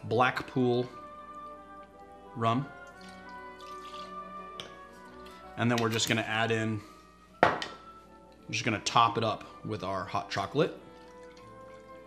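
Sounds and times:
soft background music: 0.0s - 12.0s
liquid pouring: 2.7s - 6.1s, 10.8s - 12.0s.

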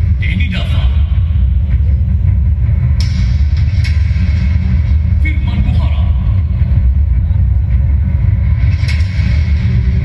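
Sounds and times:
heavy bass rumble: 0.0s - 10.0s.

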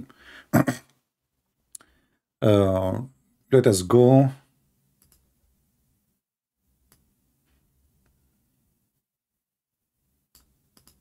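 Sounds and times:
man speaking: 2.4s - 4.5s
computer mouse clicks: 5.0s - 5.3s, 6.8s - 7.1s, 10.3s - 11.0s.

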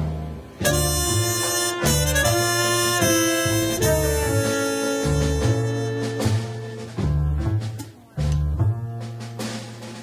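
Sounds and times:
double bass: 0.0s - 10.0s
piano: 0.0s - 10.0s
saxophone and trumpet melody: 0.6s - 7.6s.

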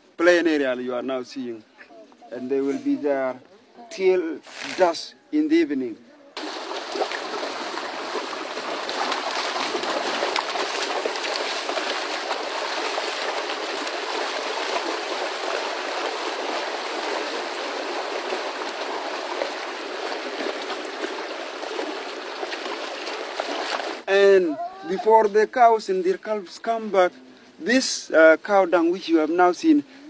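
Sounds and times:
water splashing as cattle wade: 6.4s - 24.1s.

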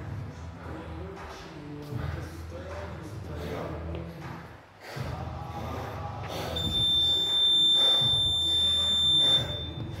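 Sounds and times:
high-pitched timer buzzer beep: 6.6s - 9.8s.

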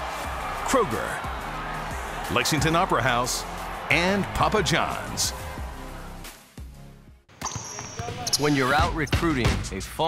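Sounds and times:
basketball bouncing on hardwood: 7.4s - 8.3s.

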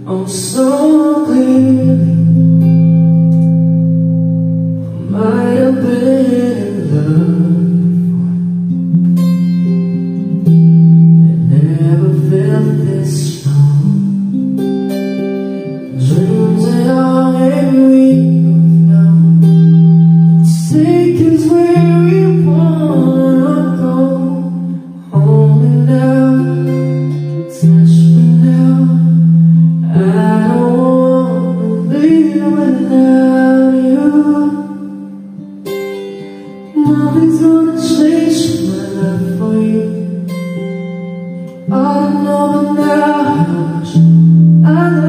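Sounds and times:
man singing a ballad: 0.0s - 3.2s, 4.8s - 10.4s, 11.0s - 14.4s, 15.0s - 35.4s, 36.4s - 45.0s
electric guitar chords: 0.0s - 45.0s.

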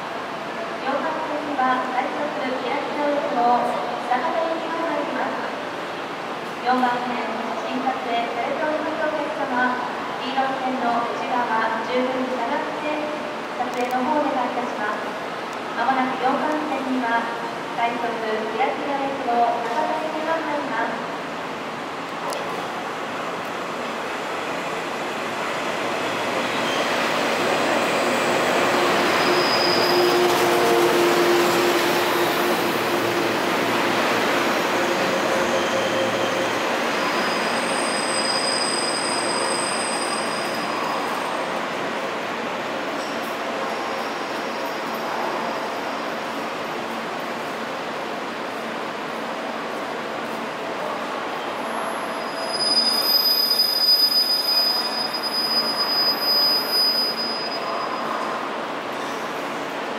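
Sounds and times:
rough brake squealing: 29.0s - 30.9s, 37.2s - 41.1s, 51.9s - 58.2s
thin high squeal: 52.2s - 58.1s.

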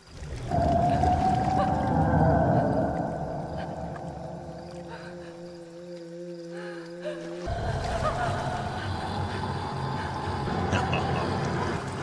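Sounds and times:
low rumble: 0.2s - 5.0s
eerie drone of held tones: 0.4s - 12.0s.

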